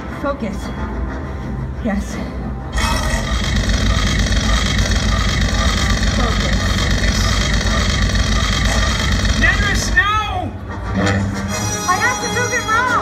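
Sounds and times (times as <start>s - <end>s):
steam jet rumbling and hissing: 2.8s - 10.0s.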